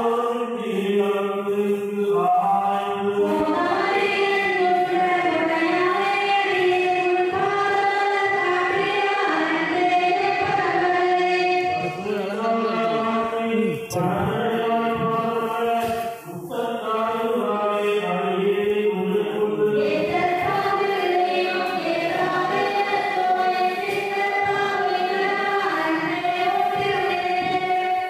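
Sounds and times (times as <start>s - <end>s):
voices singing devotional chant: 0.0s - 28.0s.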